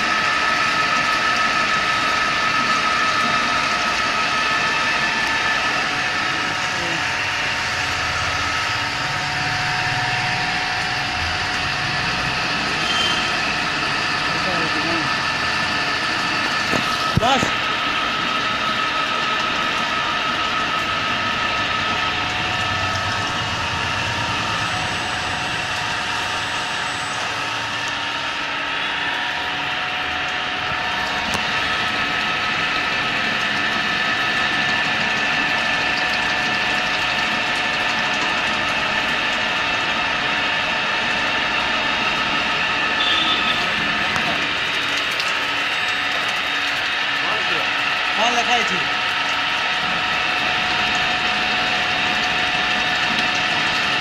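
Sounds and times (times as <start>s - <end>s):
milling machine whine: 0.0s - 54.0s.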